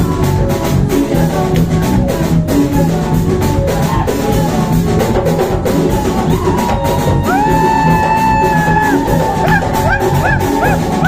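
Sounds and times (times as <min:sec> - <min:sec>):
live band dance music: 0:00.0 - 0:11.0
steady drum beat: 0:00.0 - 0:11.0.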